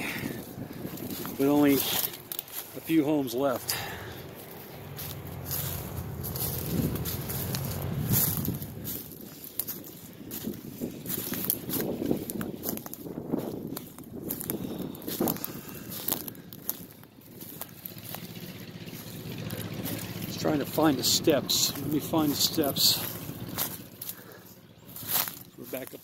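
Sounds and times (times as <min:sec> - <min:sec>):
wind rumble on microphone: 0:00.0 - 0:03.3, 0:04.3 - 0:18.1
footsteps through dry grass: 0:00.0 - 0:26.0.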